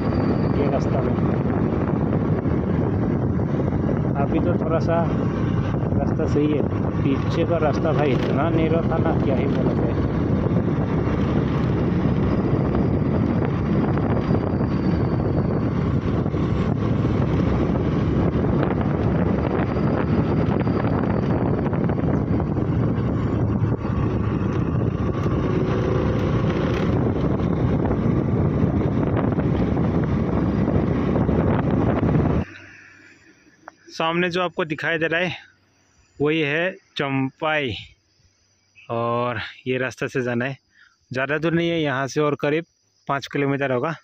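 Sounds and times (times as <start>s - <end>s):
wind buffeting microphone: 0.0s - 32.5s
motor scooter running: 5.1s - 32.4s.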